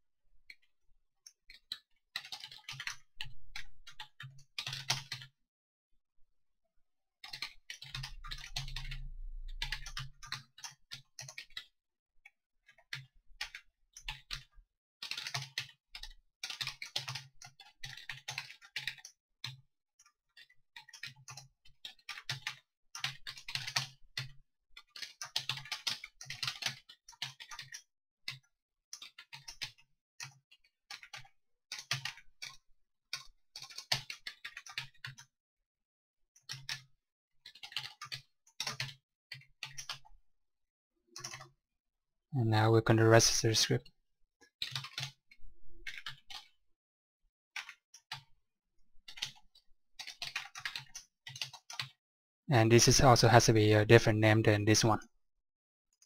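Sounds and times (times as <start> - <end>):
computer keyboard typing: 1.3 - 5.3, 7.2 - 11.7, 12.6 - 19.6, 20.3 - 35.3, 36.4 - 40.1, 41.2 - 41.5, 44.5 - 45.2, 45.9 - 46.6, 47.6 - 48.3, 49.0 - 52.0.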